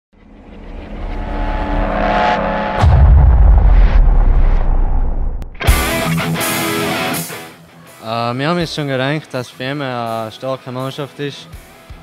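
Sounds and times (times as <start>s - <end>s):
sustained synth tones: 0.2s - 5.6s
whoosh: 0.2s - 5.9s.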